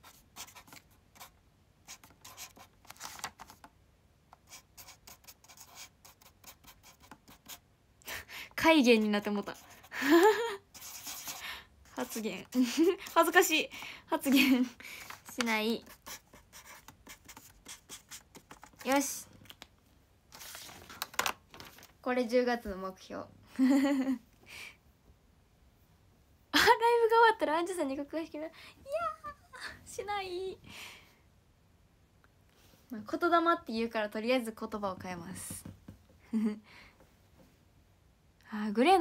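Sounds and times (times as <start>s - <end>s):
marker pen strokes: 0.0s - 3.7s, 4.3s - 7.6s, 10.7s - 13.8s, 15.0s - 19.2s.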